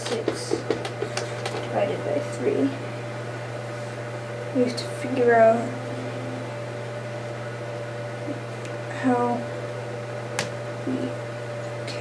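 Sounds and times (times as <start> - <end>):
low drone hum: 4.1 - 7.2.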